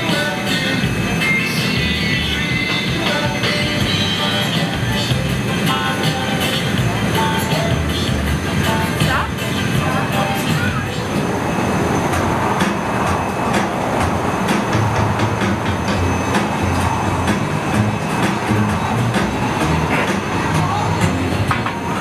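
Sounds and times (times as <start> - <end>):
furnace and burners roaring: 0.0 - 22.0.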